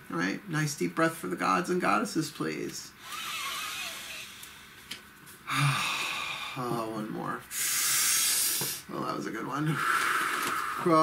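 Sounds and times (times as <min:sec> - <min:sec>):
person exhaling deeply: 0:05.5 - 0:06.8, 0:09.6 - 0:11.0.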